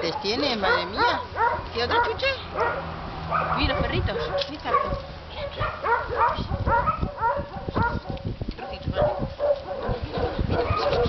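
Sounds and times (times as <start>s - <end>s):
dog barking: 0.1s - 11.0s.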